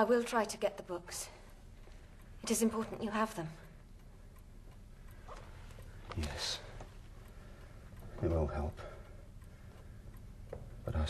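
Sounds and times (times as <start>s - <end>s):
clock ticking quietly: 0.0s - 11.0s.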